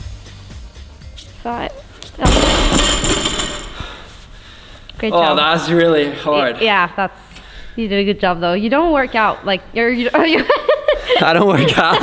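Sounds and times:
barbell plates ringing and rattling: 2.2 - 3.8.

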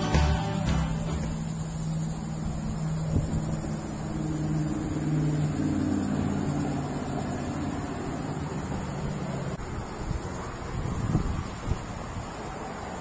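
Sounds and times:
engine running steadily: 0.0 - 13.0
outdoor noise: 0.0 - 13.0.

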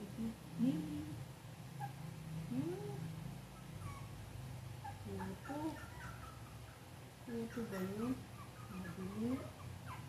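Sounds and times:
low steady hum: 0.0 - 10.0
puppies whimpering: 3.6 - 4.2, 4.8 - 10.0.

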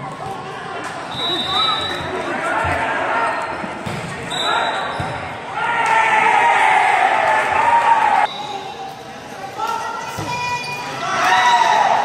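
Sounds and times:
voices echoing in a gym: 0.0 - 12.0.

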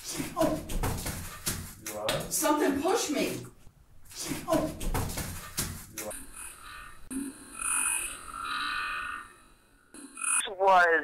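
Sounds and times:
shuffling and knocking: 0.2 - 3.3, 4.2 - 6.1.

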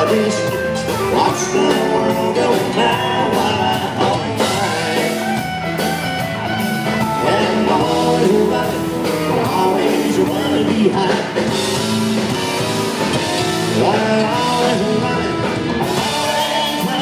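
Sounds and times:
man singing lead vocal: 0.0 - 5.7, 7.0 - 11.9, 13.1 - 17.0
bass: 0.0 - 17.0
drums: 0.0 - 17.0
electric and acoustic guitars: 0.0 - 17.0.

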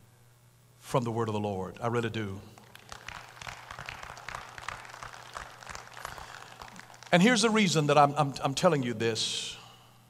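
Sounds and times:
faint scattered applause: 2.5 - 7.8.

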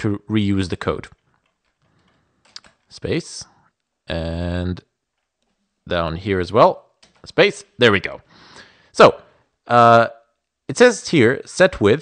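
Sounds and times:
keyboard keys clicking: 1.1 - 2.9, 7.0 - 7.3.

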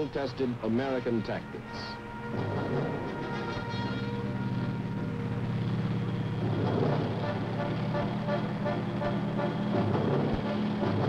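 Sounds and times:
film score music: 0.0 - 11.0
tank engines and tracks: 0.0 - 11.0.

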